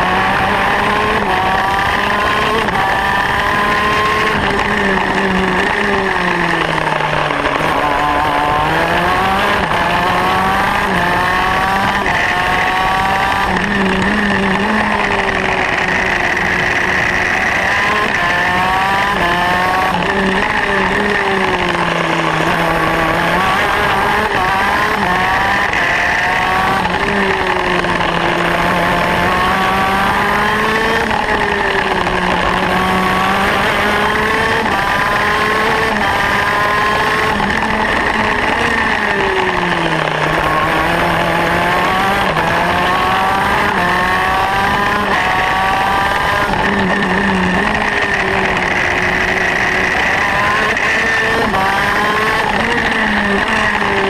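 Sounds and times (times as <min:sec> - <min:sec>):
kart engine revving through gears: 0:00.0 - 0:54.0.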